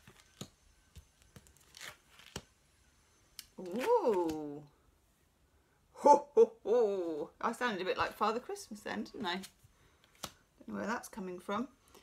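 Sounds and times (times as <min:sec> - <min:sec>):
cards rustling: 0:00.0 - 0:02.5.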